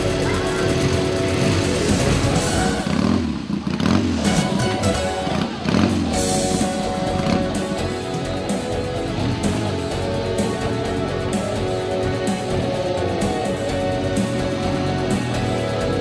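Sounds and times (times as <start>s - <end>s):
background music: 0.0s - 16.0s
motorcycle engine revving: 0.0s - 16.0s.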